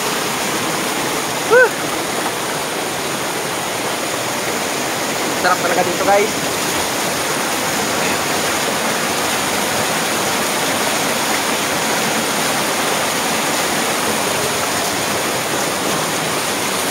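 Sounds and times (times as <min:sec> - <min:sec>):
waterfall pouring over rocks: 0:00.0 - 0:16.9.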